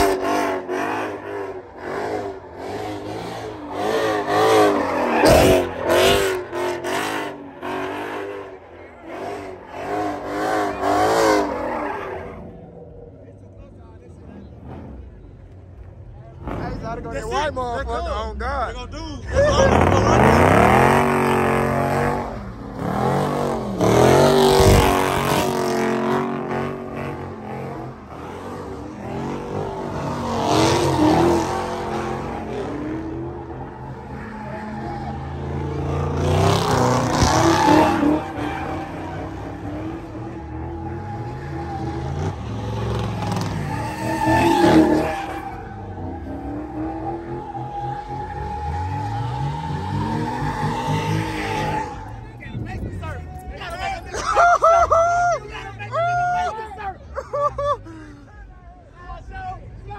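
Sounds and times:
tyres screeching on asphalt: 0.0s - 13.2s, 19.2s - 57.8s
car engine revving: 0.0s - 54.5s.

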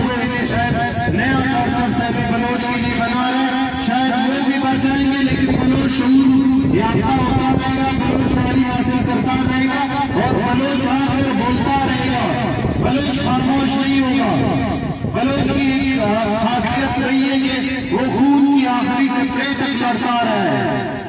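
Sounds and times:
man speaking through loudspeaker: 0.0s - 21.0s.

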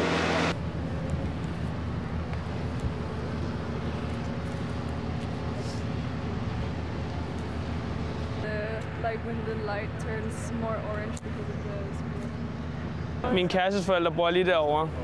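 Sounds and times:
low rumble of engines: 0.0s - 15.0s.

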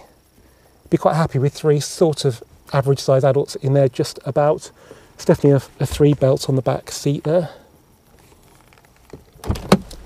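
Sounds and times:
rustling and handling noise: 8.0s - 10.0s.

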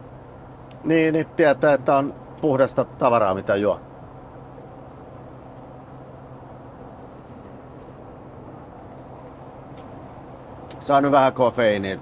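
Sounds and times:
engine hum: 0.0s - 12.0s
road and tyre noise: 0.0s - 12.0s.

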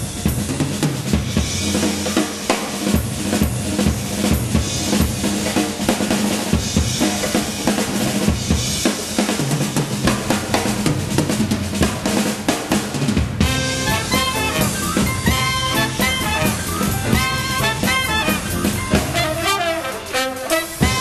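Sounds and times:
jazz drum kit solo: 0.0s - 21.0s.

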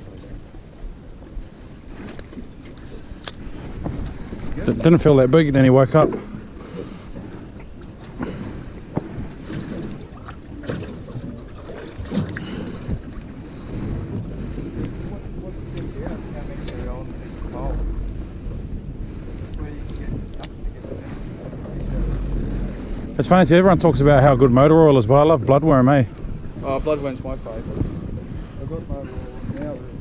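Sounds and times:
water around boat: 0.0s - 30.0s
wind buffeting microphone: 0.0s - 30.0s.

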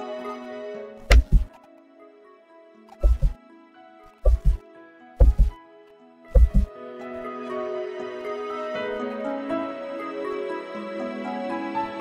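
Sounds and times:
music with held notes: 0.0s - 12.0s
deep double bass thump: 1.0s - 1.5s, 3.0s - 3.4s, 4.2s - 4.6s, 5.2s - 5.6s, 6.4s - 6.7s.

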